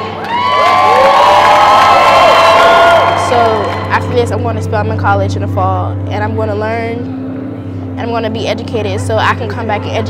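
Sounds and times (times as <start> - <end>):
crowd cheering and shouting: 0.0 - 4.1.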